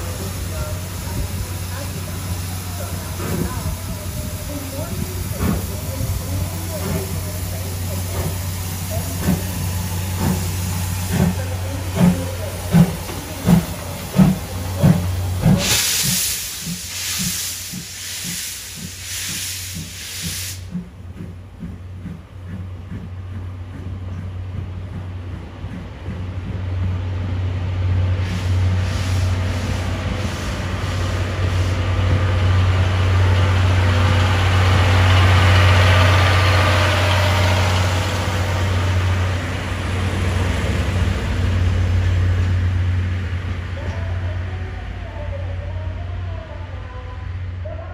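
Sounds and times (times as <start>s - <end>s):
steam hissing: 0.0s - 43.5s
steam locomotive chuffing: 0.0s - 46.0s.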